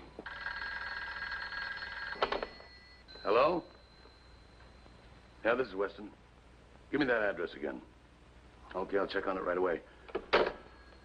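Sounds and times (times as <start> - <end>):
telephone bell ringing: 0.0 - 5.5, 10.5 - 11.0.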